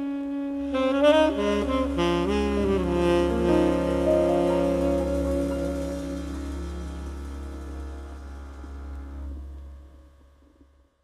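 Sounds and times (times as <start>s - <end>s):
jazz band closing chord: 0.6s - 9.3s.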